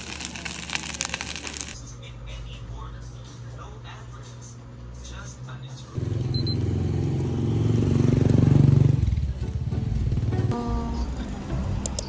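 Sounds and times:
motorcycle engine running: 6.0 - 12.0
background music: 9.1 - 12.0.

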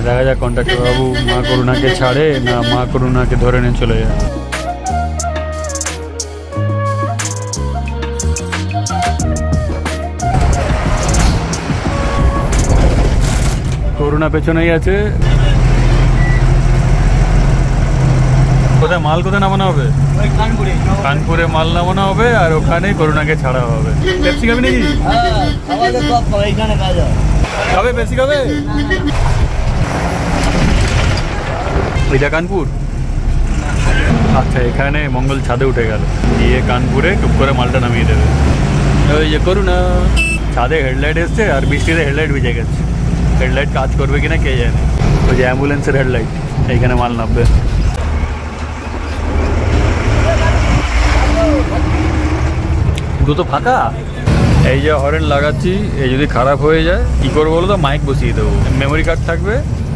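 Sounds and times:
bus engine and road rumble: 0.0 - 7.0, 8.9 - 59.9.

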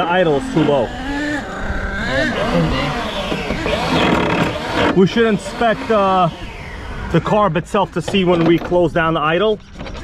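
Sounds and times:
people talking: 0.0 - 0.9, 2.1 - 3.0, 4.9 - 6.4, 7.1 - 9.6.

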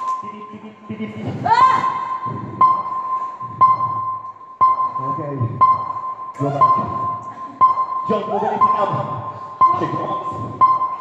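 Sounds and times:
high electronic beep: 0.0 - 0.9, 2.0 - 11.0.

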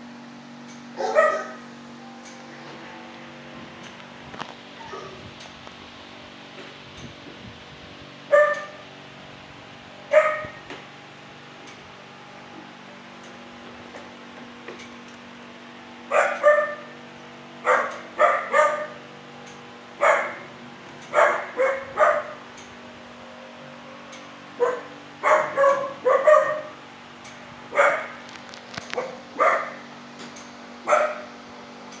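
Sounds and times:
steady low hum: 0.0 - 32.0
dog barking: 1.0 - 1.6, 4.8 - 5.2, 8.3 - 8.8, 10.1 - 10.6, 16.1 - 16.9, 17.6 - 19.0, 20.0 - 20.5, 21.1 - 22.4, 24.6 - 26.8, 27.7 - 28.2, 29.0 - 29.8, 30.9 - 31.3.

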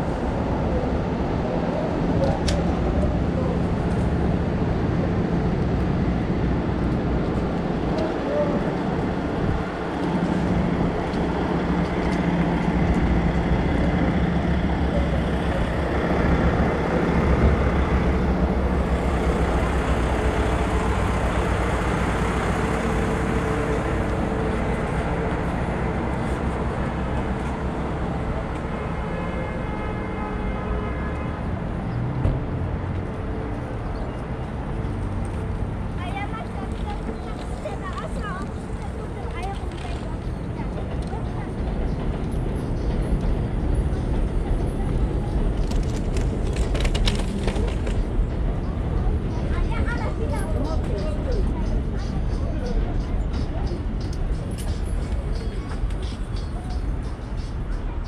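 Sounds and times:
city street traffic: 0.0 - 58.0.

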